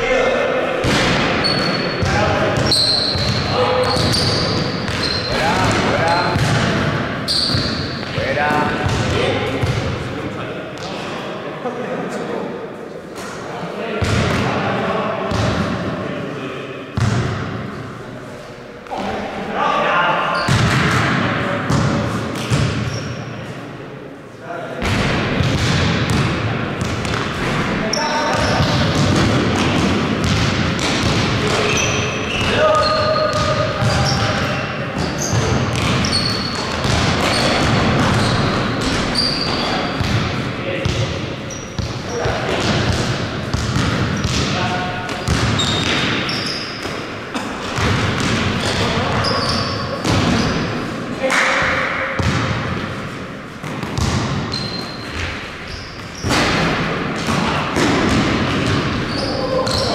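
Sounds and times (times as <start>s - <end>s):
basketball bouncing on court: 0.8s - 10.0s, 14.0s - 14.5s, 15.3s - 15.7s, 17.0s - 17.6s, 20.4s - 23.0s, 24.8s - 47.0s, 47.6s - 50.7s, 52.2s - 52.9s, 53.6s - 59.9s
shoe squeaks: 1.4s - 5.4s, 6.0s - 6.4s, 7.3s - 8.2s, 20.3s - 20.6s, 22.9s - 23.2s, 27.8s - 28.8s, 31.5s - 40.0s, 41.4s - 42.2s, 45.6s - 46.9s, 48.6s - 50.7s, 54.5s - 56.4s, 59.0s - 59.9s.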